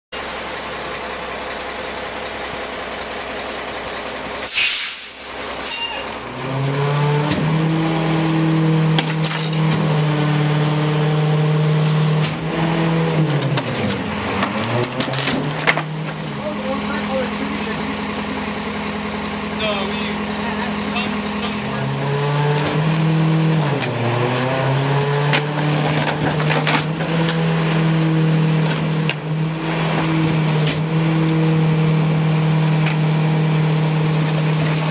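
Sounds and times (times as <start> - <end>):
diesel engine idling: 0.2 - 34.9
air hiss: 4.4 - 5.4
furniture cracking and crunching: 13.2 - 16.5, 22.5 - 30.4.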